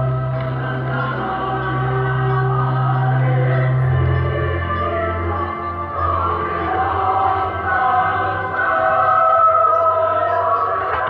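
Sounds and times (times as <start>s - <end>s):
choir singing held notes: 0.0s - 11.0s
steady low bass: 0.0s - 11.0s.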